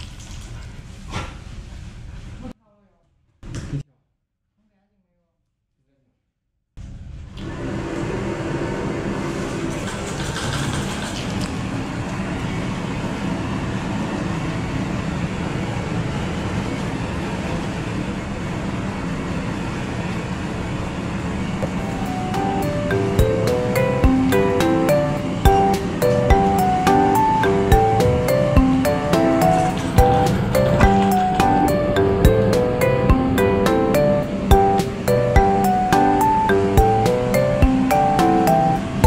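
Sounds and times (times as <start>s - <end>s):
melody with ticking beat: 21.6s - 39.0s
dense steady background music: 21.7s - 39.0s.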